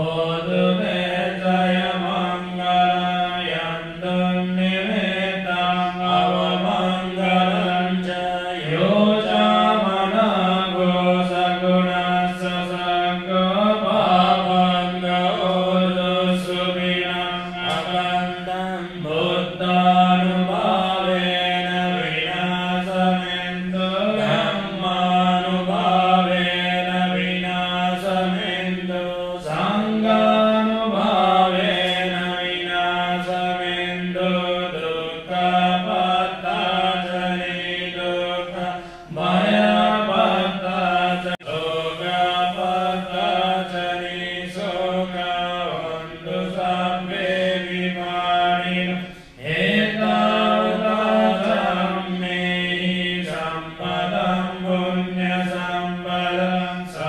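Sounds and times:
voices chanting together: 0.0s - 57.0s.

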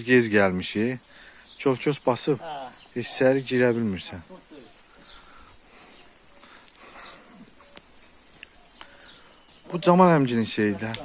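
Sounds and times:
bird chirps: 0.0s - 11.0s.

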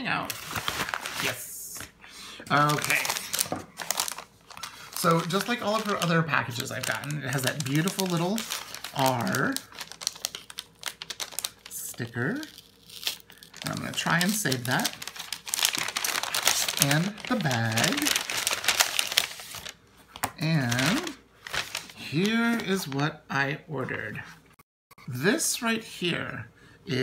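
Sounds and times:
paper bag crinkling: 0.2s - 1.8s, 2.5s - 19.8s, 20.5s - 23.0s.

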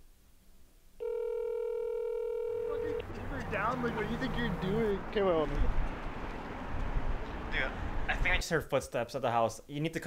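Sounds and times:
telephone ringback tone: 1.0s - 3.0s
voices: 2.6s - 5.8s.

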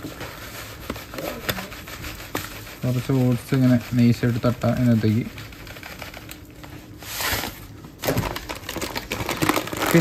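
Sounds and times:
bag crinkling: 7.3s - 10.0s
oats pouring into plastic cup: 8.1s - 10.0s.

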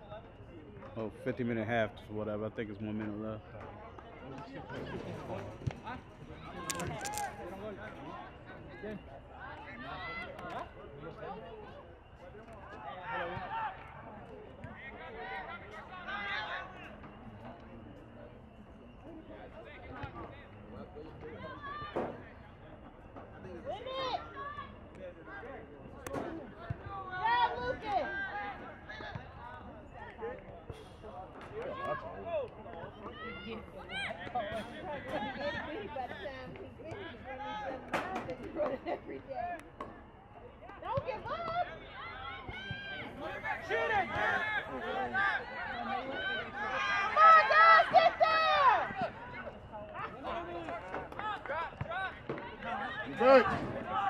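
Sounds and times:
voices shouting and calling out: 3.4s - 54.0s.

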